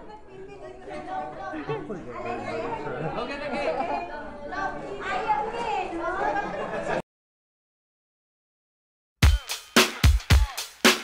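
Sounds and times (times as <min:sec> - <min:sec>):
overlapping chatter of people: 0:00.0 - 0:07.0.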